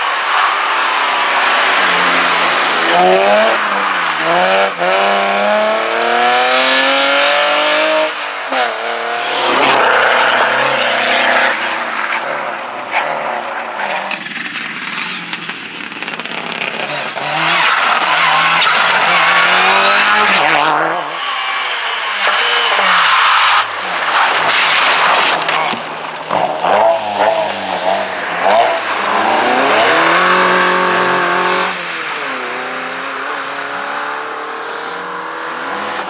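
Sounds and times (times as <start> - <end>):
car engine slowing: 0.0 - 12.6, 25.7 - 36.0
rally car passing at full throttle: 0.0 - 15.3, 16.8 - 36.0
rally car accelerating: 0.0 - 36.0.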